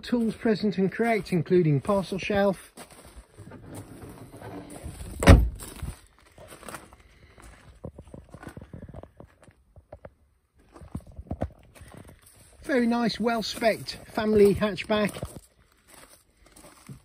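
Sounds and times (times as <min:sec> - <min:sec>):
footsteps on gravel: 0:00.0 - 0:09.8, 0:10.6 - 0:17.0
car tailgate slamming shut: 0:05.1 - 0:05.6.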